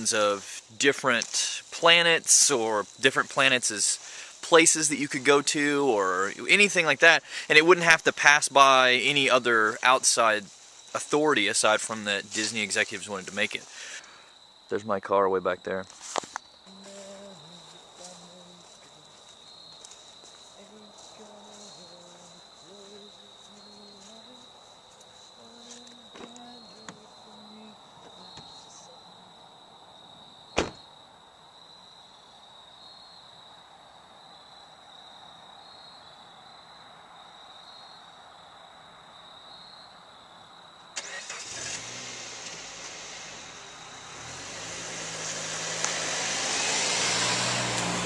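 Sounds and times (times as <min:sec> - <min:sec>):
car engine starting: 0:00.0 - 0:10.4, 0:11.0 - 0:14.0, 0:41.0 - 0:48.0
car pulling away: 0:00.0 - 0:14.0, 0:41.0 - 0:48.0
car engine idling: 0:00.0 - 0:14.2, 0:41.0 - 0:48.0
crickets trilling: 0:00.0 - 0:48.0.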